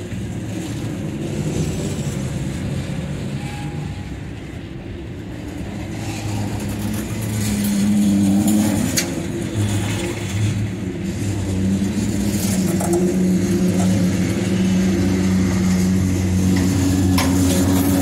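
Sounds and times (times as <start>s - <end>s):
train wheels rumbling on rail: 0.0s - 18.0s.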